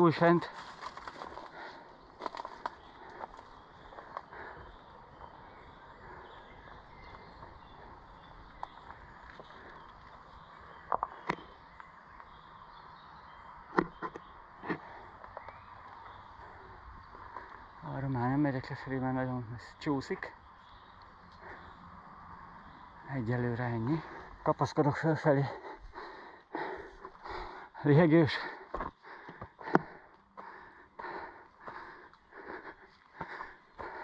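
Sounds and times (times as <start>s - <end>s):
footsteps on stony ground: 0.1s - 12.4s, 28.2s - 34.0s.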